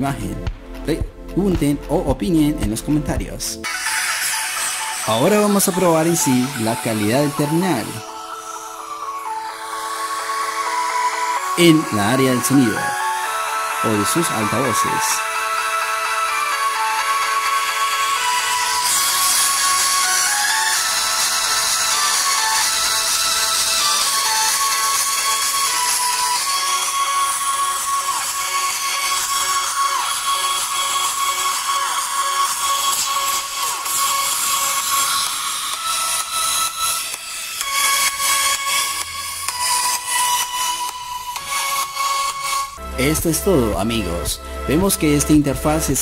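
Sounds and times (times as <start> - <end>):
music from phone loudspeaker: 0.0 - 46.0.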